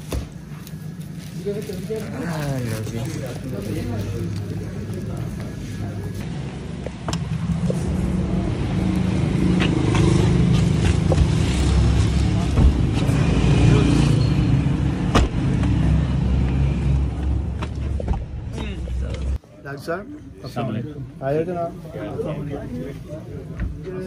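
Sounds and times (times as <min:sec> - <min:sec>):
plastic carrier bags rustling: 0:00.0 - 0:05.3.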